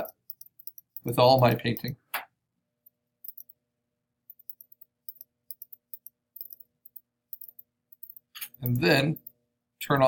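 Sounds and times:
computer mouse clicks: 0.0 - 1.1, 3.2 - 3.6, 4.3 - 9.3.

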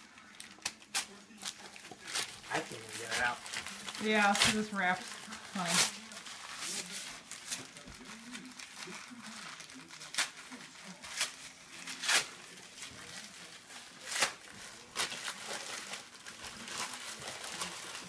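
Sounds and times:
plastic packaging crinkling: 0.0 - 18.0.

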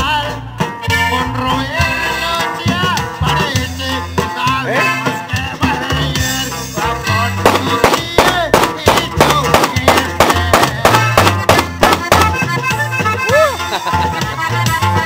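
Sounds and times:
dance band music: 7.5 - 15.0.

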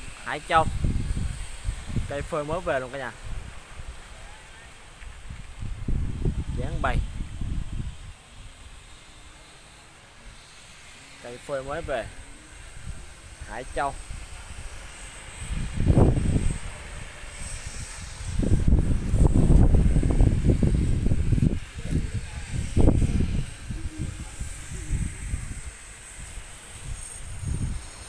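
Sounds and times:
wind buffeting microphone: 0.0 - 8.8, 11.8 - 28.0.

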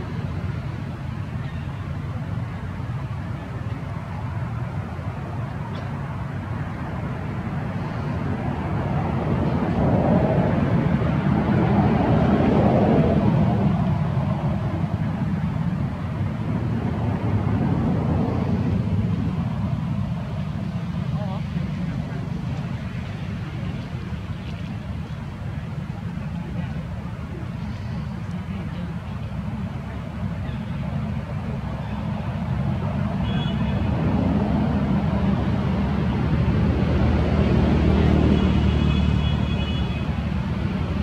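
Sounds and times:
low outdoor rumbling: 0.0 - 41.0.

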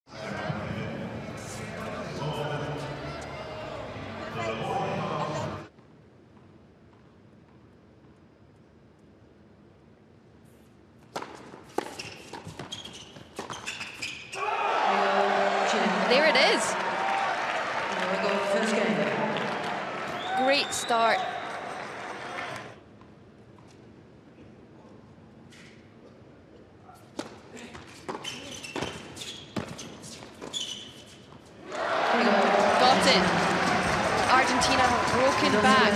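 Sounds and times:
crowd cheering and shouting: 2.8 - 5.6, 14.4 - 22.7, 31.6 - 35.9
tennis ball bouncing: 11.1 - 12.7
tennis ball hit by rackets: 11.1 - 12.7.

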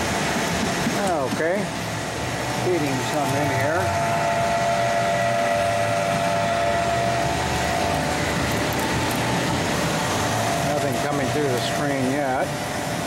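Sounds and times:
broad mechanical hum: 0.0 - 13.0
screw press motor whining: 2.2 - 13.0.

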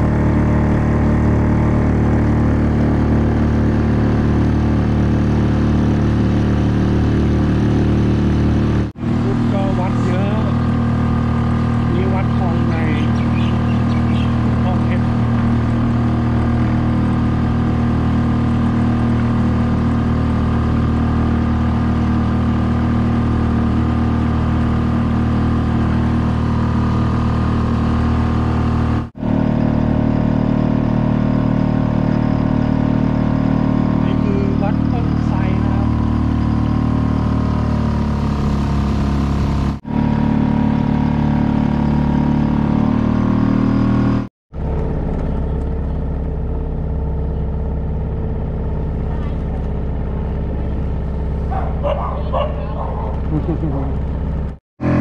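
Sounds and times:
outboard motor running: 0.0 - 55.0.

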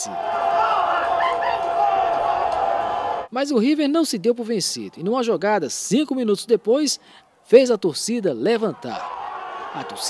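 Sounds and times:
stadium crowd din: 0.0 - 3.3, 8.6 - 10.0.

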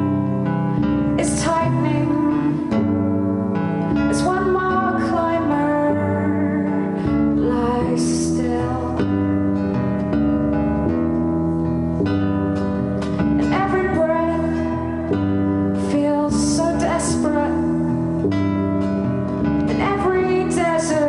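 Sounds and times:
woman singing folk song: 0.0 - 11.0, 12.0 - 21.0
acoustic guitar chords: 0.0 - 21.0.

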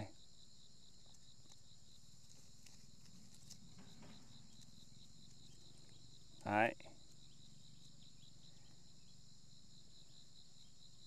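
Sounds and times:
insect chorus buzzing: 0.0 - 11.0
leaves rustling: 2.1 - 4.7.

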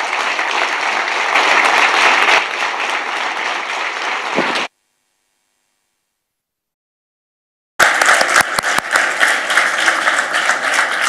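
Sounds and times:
audience applauding: 0.0 - 4.7, 7.8 - 11.0.

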